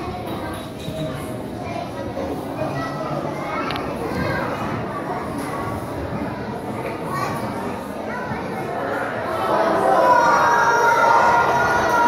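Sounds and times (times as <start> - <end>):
children chattering and calling out: 0.0 - 12.0.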